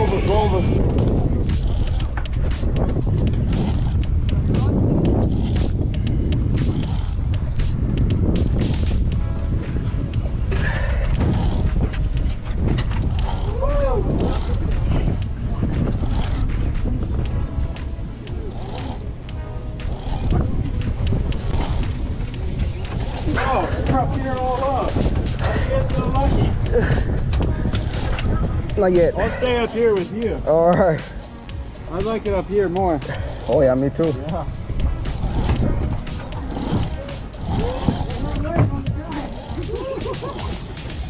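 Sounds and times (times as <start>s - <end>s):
boat engine rumble: 0.0s - 41.0s
wind: 0.0s - 41.0s.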